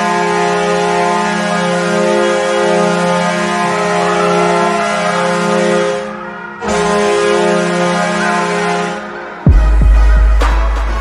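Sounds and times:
air horn blast: 0.0s - 11.0s.

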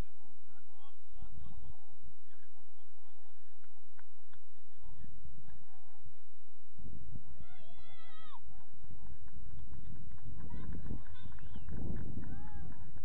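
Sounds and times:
wind buffeting microphone: 8.4s - 13.0s.

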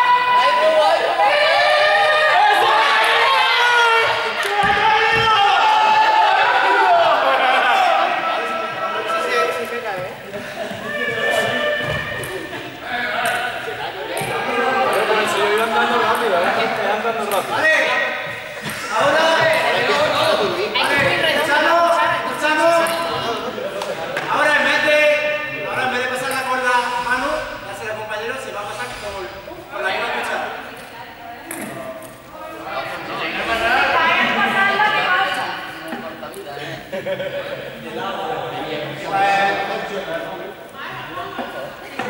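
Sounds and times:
young people talking and calling out: 0.0s - 42.0s.

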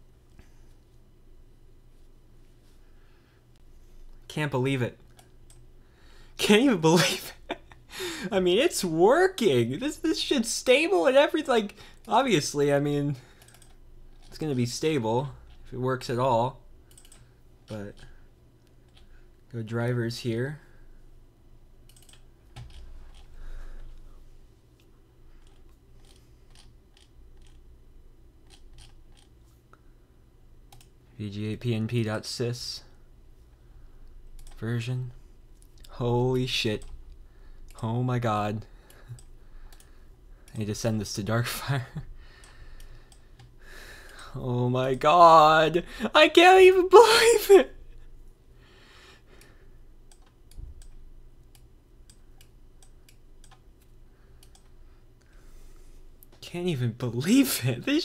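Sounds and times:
low steady hum: 0.0s - 58.0s
computer mouse clicking: 13.4s - 14.4s, 16.9s - 19.1s, 21.8s - 24.0s, 24.8s - 27.6s, 28.4s - 29.3s, 30.7s - 31.0s, 34.3s - 34.6s, 39.1s - 40.6s, 50.0s - 55.3s.

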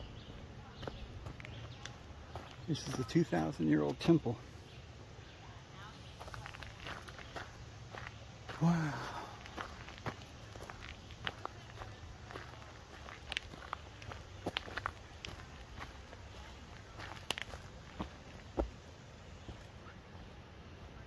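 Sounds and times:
footsteps on leaves and twigs: 0.8s - 4.3s, 6.0s - 19.7s.

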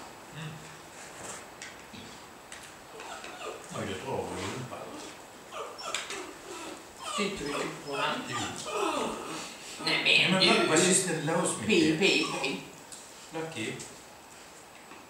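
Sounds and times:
low voices: 0.3s - 0.7s
small dog whining: 2.9s - 3.8s, 4.9s - 9.5s, 12.0s - 12.7s.

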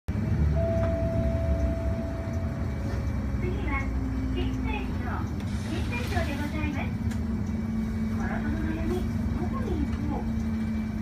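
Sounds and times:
bus engine rumbling: 0.1s - 11.0s.

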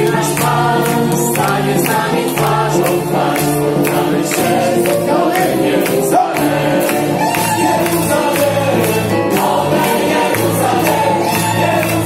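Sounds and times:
band playing steady beat: 0.0s - 12.0s
choir singing: 0.0s - 12.0s.

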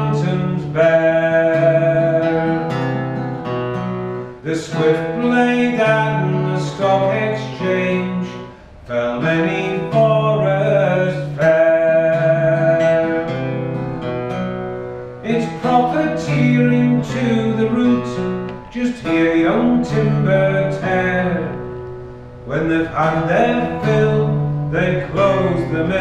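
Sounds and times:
person singing: 0.0s - 3.0s, 4.4s - 13.6s, 15.2s - 21.6s, 22.5s - 26.0s
held melody notes: 0.0s - 26.0s
strummed acoustic guitar: 0.0s - 26.0s.

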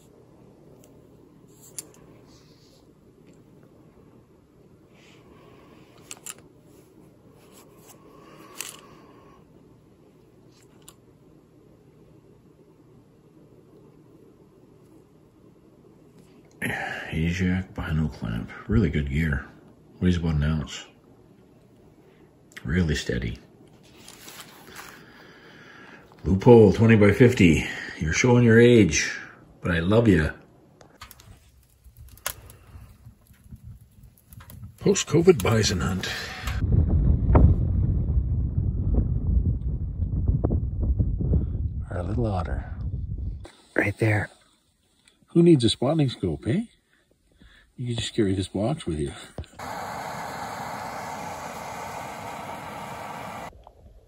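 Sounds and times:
wood fire crackling and popping: 30.8s - 36.6s
low rumble: 36.5s - 43.5s.

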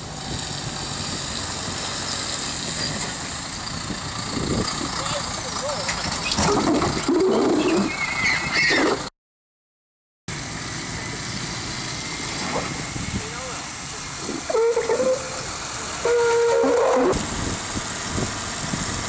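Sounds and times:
tractor engine running: 0.0s - 9.1s, 10.3s - 19.0s.

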